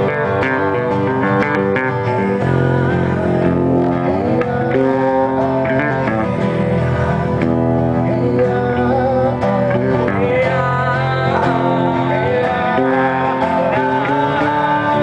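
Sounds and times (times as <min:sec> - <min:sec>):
man singing: 0:00.0 - 0:15.0
strummed acoustic guitar: 0:00.0 - 0:15.0.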